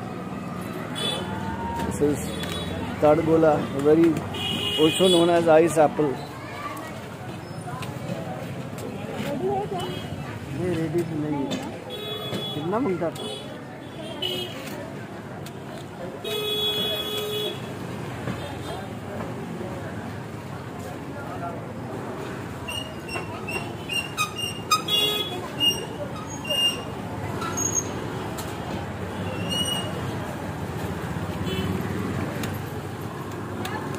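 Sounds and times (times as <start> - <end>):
street traffic noise: 0.0 - 33.9
motor vehicles running: 17.7 - 33.9.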